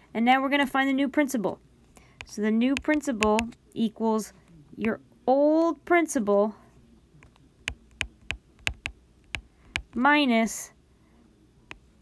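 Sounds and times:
stylus tapping on tablet screen: 0:02.2 - 0:03.6, 0:07.2 - 0:10.0.

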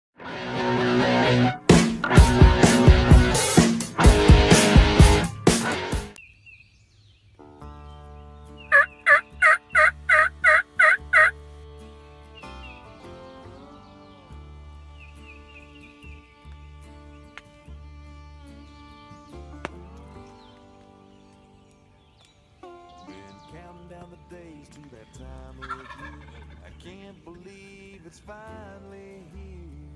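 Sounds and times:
loud rock music: 0:00.2 - 0:06.2
turkey yelping: 0:08.7 - 0:11.3, 0:25.6 - 0:26.6.

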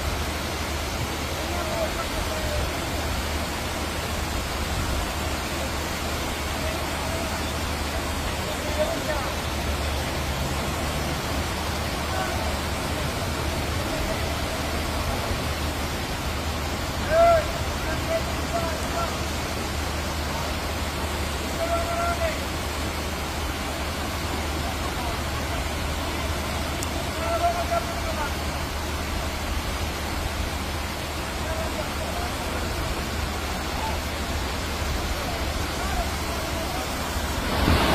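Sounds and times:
floodwater running: 0:00.0 - 0:37.9
torrential rain: 0:00.0 - 0:37.9.

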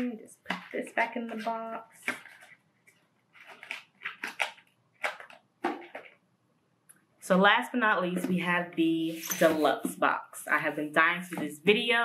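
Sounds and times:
paper and wrapping rustling: 0:00.5 - 0:06.2.

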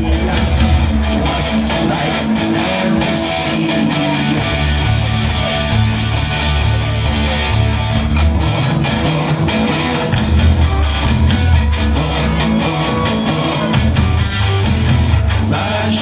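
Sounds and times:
live rock band playing: 0:00.0 - 0:16.0.

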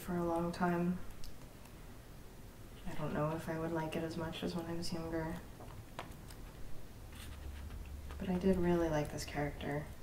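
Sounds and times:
paper pages rustling: 0:06.1 - 0:08.2.

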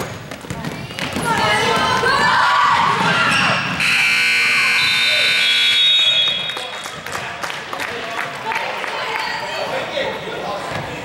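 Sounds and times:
voices in a gym: 0:00.0 - 0:11.0
scoreboard buzzer: 0:03.8 - 0:06.5.

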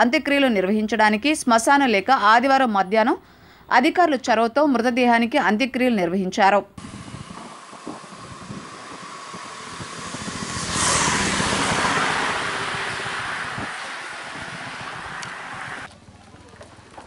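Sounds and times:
road vehicle passing: 0:06.8 - 0:17.0.

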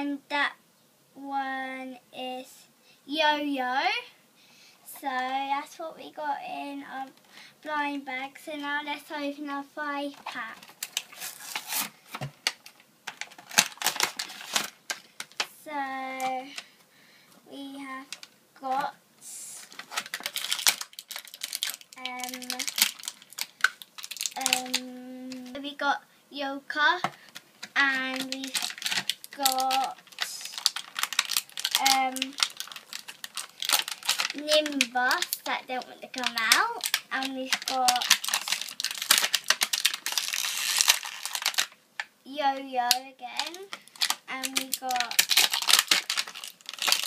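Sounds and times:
plastic packaging rustling and clicking: 0:10.1 - 0:16.7, 0:18.0 - 0:18.9, 0:19.6 - 0:25.6, 0:26.9 - 0:42.2, 0:42.8 - 0:47.0.

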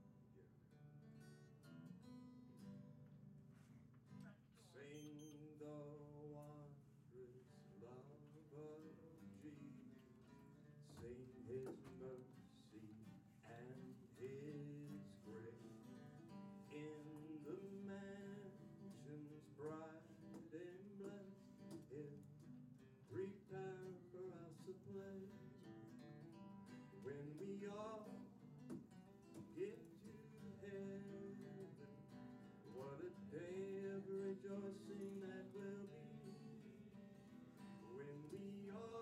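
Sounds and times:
man singing: 0:04.6 - 0:10.0, 0:10.8 - 0:25.8, 0:26.7 - 0:39.0
acoustic guitar strumming: 0:07.6 - 0:39.0.

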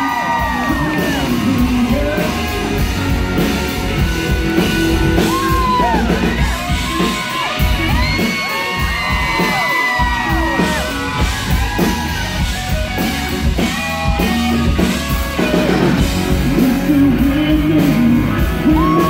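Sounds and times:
person singing: 0:00.0 - 0:03.2, 0:16.2 - 0:19.0
crowd yelling and whooping: 0:00.0 - 0:16.4, 0:17.8 - 0:19.0
country-rock band playing: 0:00.0 - 0:19.0.

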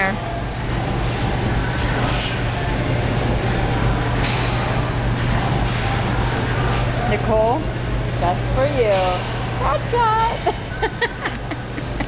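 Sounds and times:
low hum of gym machines: 0:00.0 - 0:12.0.

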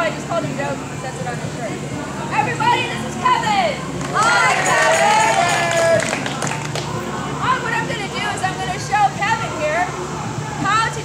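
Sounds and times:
people whooping and calling out: 0:04.1 - 0:06.6.

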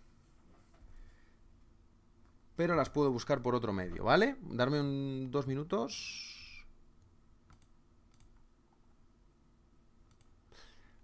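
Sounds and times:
computer keyboard and mouse clicks: 0:07.5 - 0:08.4, 0:10.0 - 0:10.4.

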